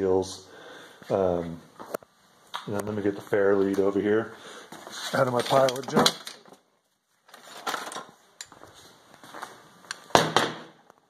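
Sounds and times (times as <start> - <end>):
metal parts clinking: 5.2 - 6.6, 7.3 - 8.6.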